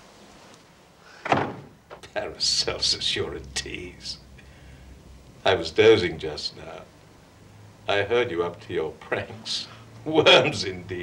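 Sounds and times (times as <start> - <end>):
door banging shut: 1.2 - 2.0.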